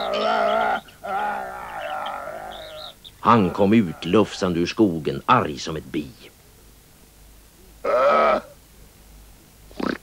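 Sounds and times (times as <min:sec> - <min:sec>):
cartoon horse whinnying: 0:07.9 - 0:08.6.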